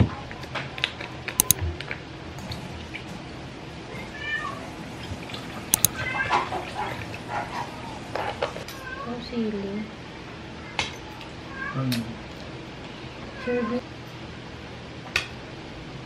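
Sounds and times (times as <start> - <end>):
sharp clicks: 5.7 - 6.0.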